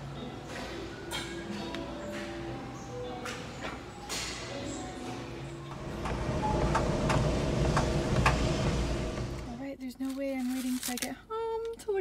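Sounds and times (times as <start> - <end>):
treadmill motor and belt hum: 5.0 - 9.6.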